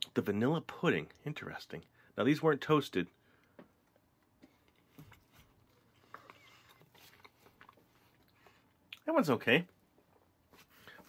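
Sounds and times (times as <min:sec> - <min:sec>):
soft chewing: 0:03.4 - 0:09.1.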